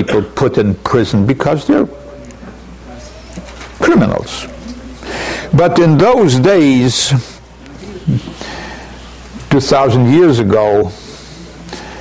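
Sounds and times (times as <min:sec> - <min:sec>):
man speaking: 0:00.0 - 0:02.3, 0:03.8 - 0:04.6, 0:05.4 - 0:08.4, 0:09.5 - 0:11.3
low steady hum: 0:00.0 - 0:12.0.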